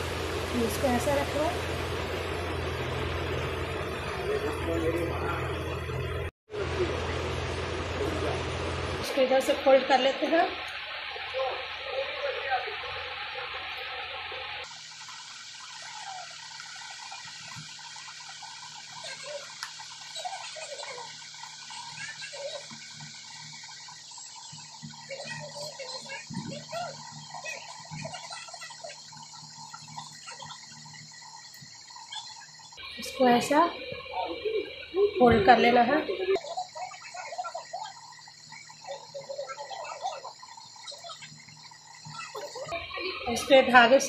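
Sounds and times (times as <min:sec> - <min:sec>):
steady background hum: 0:00.0 - 0:44.0.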